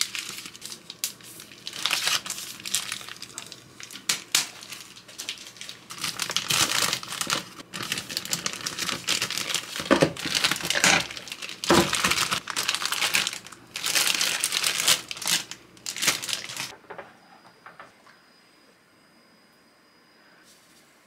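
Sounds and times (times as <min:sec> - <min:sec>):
plastic bags crinkling: 0:00.0 - 0:16.8.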